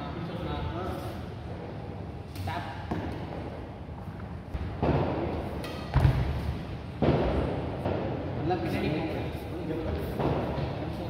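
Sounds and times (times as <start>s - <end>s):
racket hitting shuttlecock: 4.5s - 6.4s.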